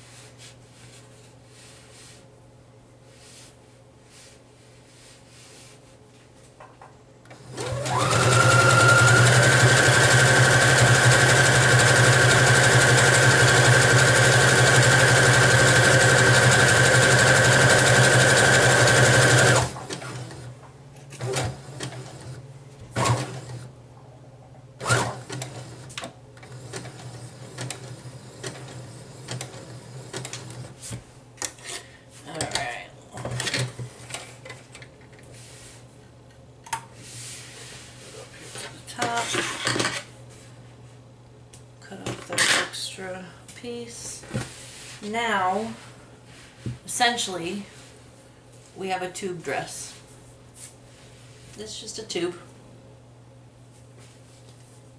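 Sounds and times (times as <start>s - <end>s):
sewing machine stitching: 7.3s - 20.5s, 21.2s - 22.4s, 23.0s - 23.7s, 24.8s - 30.7s.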